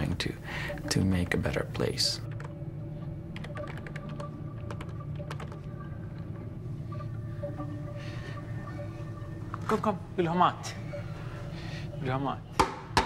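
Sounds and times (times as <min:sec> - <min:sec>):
steady low hum: 0:00.0 - 0:12.9
computer keyboard typing: 0:03.4 - 0:05.7.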